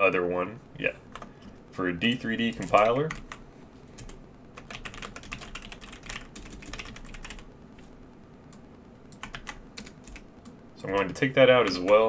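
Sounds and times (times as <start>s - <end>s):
computer keyboard typing: 1.1s - 1.4s, 2.0s - 3.4s, 4.0s - 7.5s, 8.5s - 12.0s.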